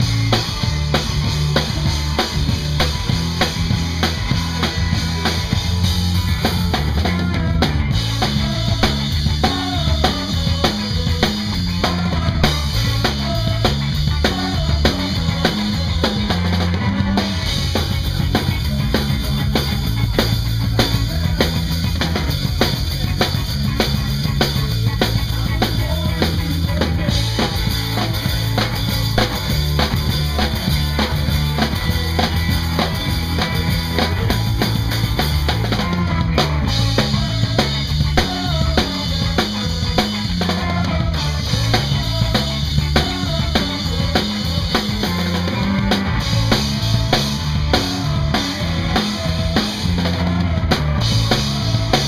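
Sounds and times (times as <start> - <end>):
bass guitar: 0.0 - 52.0
drum kit: 0.0 - 52.0
electric guitar: 0.0 - 52.0.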